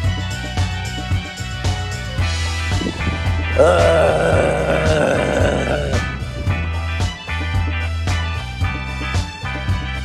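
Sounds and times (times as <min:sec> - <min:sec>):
music with steady beat: 0:00.0 - 0:10.0
man groaning with exertion: 0:02.8 - 0:06.2.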